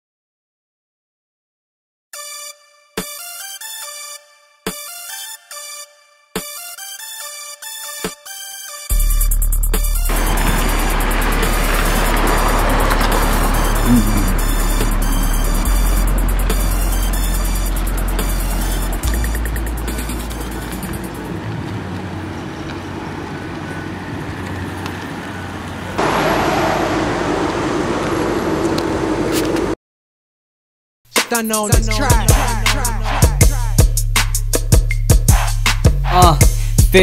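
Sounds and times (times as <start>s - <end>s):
hip-hop beat with bass and hi-hats: 8.9s - 10.1s, 13.2s - 21.2s, 31.1s - 37.0s
car humming loudly: 9.0s - 29.8s
car running: 9.0s - 29.8s
street noise: 9.0s - 29.8s, 31.6s - 36.3s.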